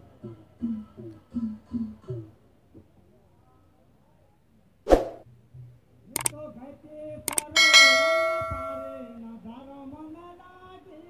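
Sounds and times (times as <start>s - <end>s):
metal plate ringing: 7.5s - 9.1s.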